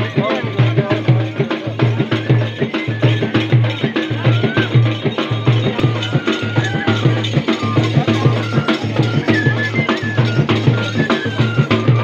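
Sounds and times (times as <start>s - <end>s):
dhol drums beating: 0.0s - 12.0s
high melody notes: 0.0s - 12.0s.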